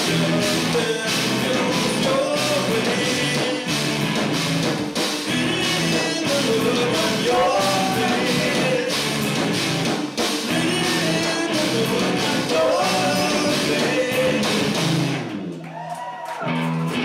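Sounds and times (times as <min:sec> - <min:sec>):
electric guitars ringing: 0:00.0 - 0:15.5
live rock band playing: 0:00.0 - 0:15.6, 0:16.4 - 0:17.0.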